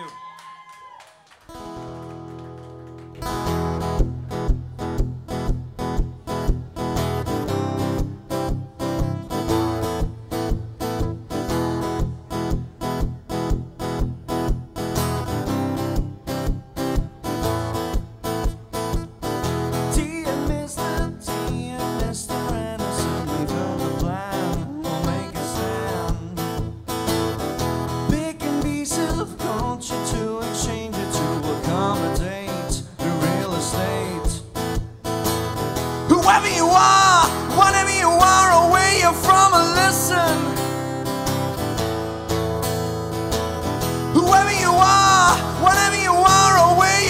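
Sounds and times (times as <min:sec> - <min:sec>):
acoustic guitar strummed and picked: 0:01.5 - 0:47.0.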